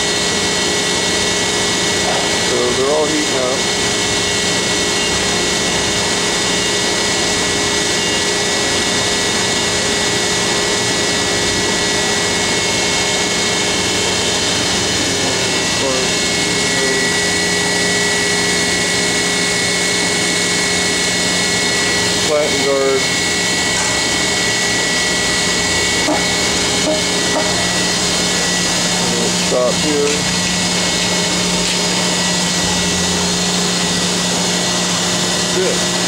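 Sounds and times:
industrial machinery roar: 0.0s - 36.0s
steady hum tones: 0.0s - 36.0s.

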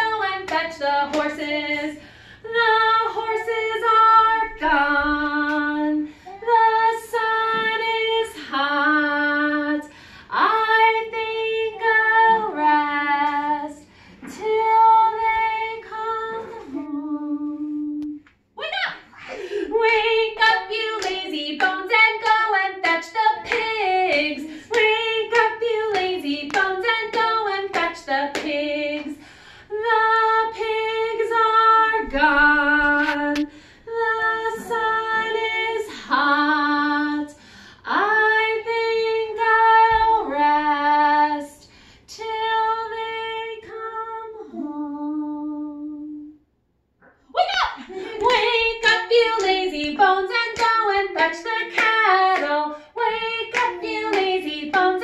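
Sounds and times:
woman singing unaccompanied: 0.0s - 18.2s, 19.7s - 46.4s, 47.8s - 55.0s.

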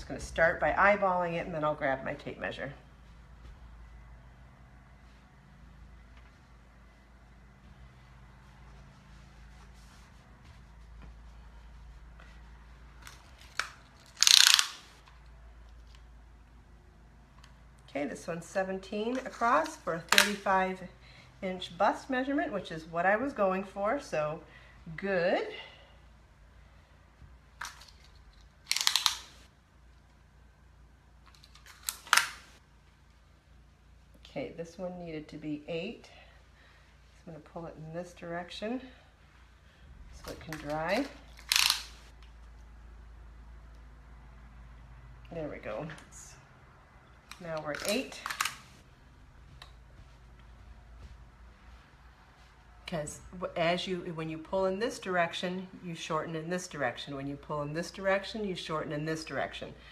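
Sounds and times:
hands smoothing wet fabric: 7.9s - 13.0s
tape measure pulled out rasping: 13.1s - 15.0s.

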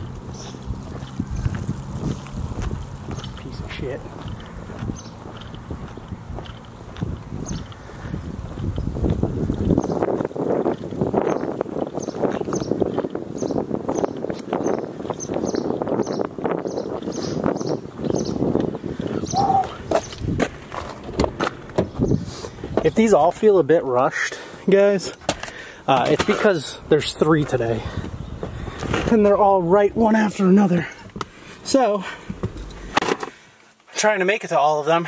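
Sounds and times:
wind rumble: 0.0s - 23.4s, 26.2s - 30.3s
footsteps on pavement: 0.0s - 23.6s, 24.5s - 33.9s.

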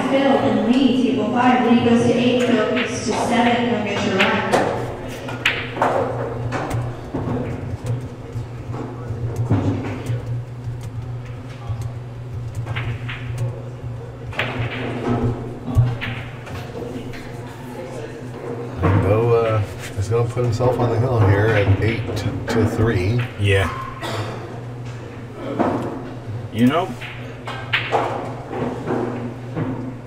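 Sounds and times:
background chatter: 0.0s - 12.6s, 13.2s - 27.4s
low hum: 0.4s - 17.8s
cue striking ball click: 2.4s - 17.4s, 26.9s - 29.9s.

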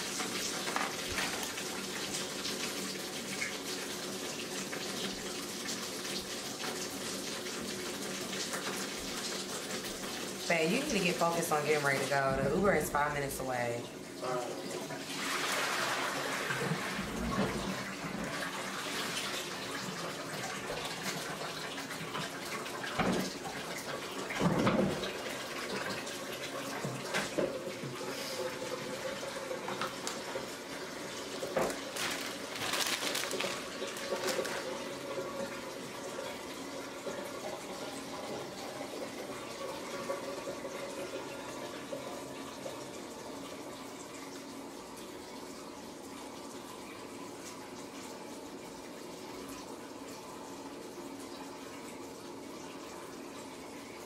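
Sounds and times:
running water: 0.0s - 54.0s.

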